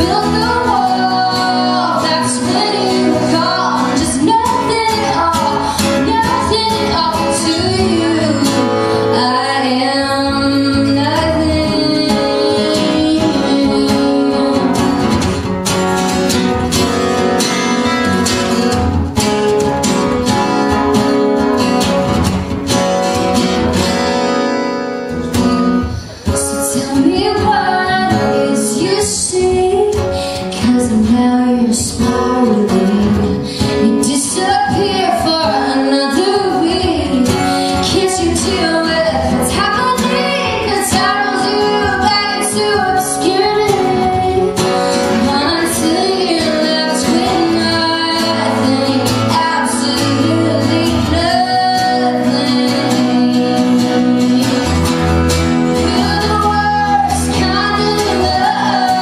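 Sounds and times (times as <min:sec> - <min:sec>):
woman singing: 0:00.0 - 0:15.6, 0:25.8 - 0:59.0
acoustic guitars strummed: 0:00.0 - 0:59.0.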